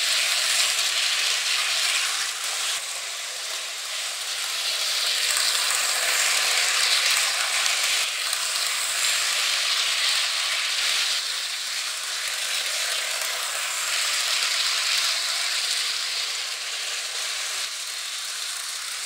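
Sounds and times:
model train whirring: 0.0 - 19.0.

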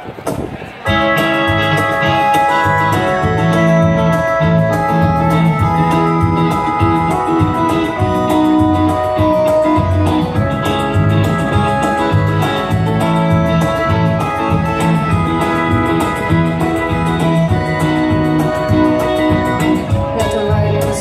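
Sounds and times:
bass guitar: 0.0 - 21.0
electric guitar: 0.0 - 21.0
steady percussion beat: 0.9 - 21.0
sustained keyboard chords: 0.9 - 21.0.

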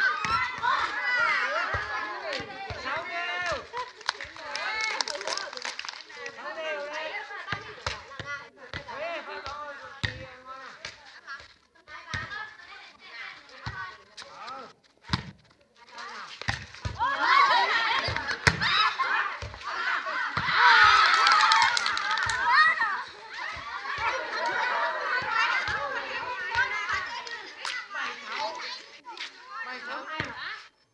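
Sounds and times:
people shouting and laughing: 0.0 - 10.8, 16.0 - 30.6.

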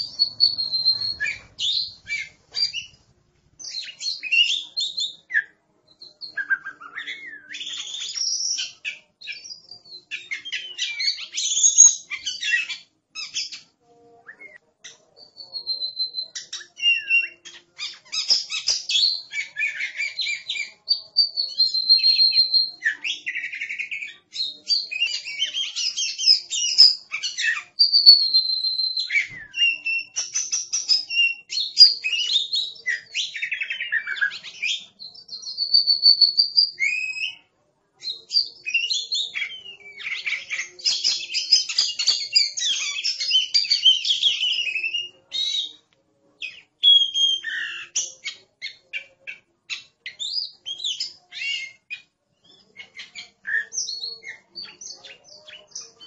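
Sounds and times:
bird singing whistles and chatter: 0.0 - 3.0, 3.6 - 45.8, 46.4 - 56.0.

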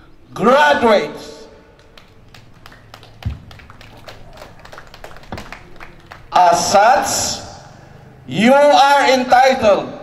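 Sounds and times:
people clapping lightly: 1.8 - 6.4.

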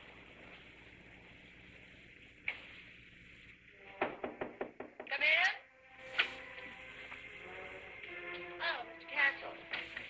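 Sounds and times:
knocking on wooden door: 4.0 - 5.2.

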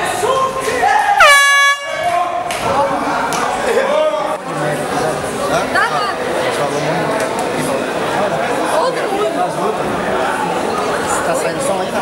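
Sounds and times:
crowd shouting: 0.0 - 4.3
loud horn blast: 1.2 - 2.2.

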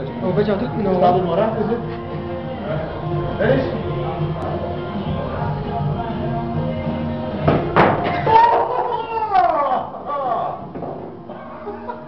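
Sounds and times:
person's falling vocal cry: 8.1 - 10.6.

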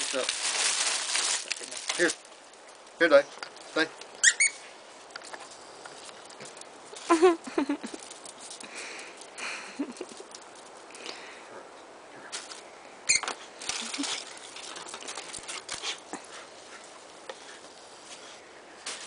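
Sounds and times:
dogs scuffling on brick: 0.0 - 9.4, 12.4 - 19.0.

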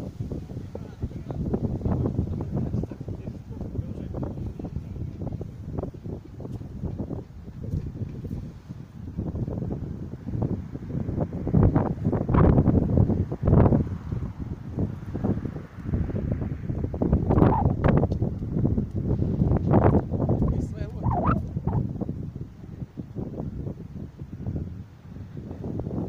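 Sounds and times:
faint street traffic: 0.0 - 20.7
wind buffeting microphone: 0.0 - 26.0.

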